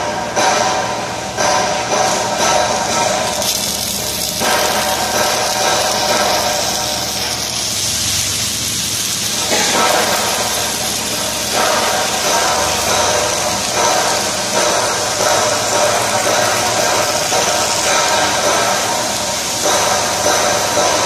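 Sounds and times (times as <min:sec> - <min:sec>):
workshop machine noise: 0:00.0 - 0:21.0
welding arc hissing and crackling: 0:01.4 - 0:21.0.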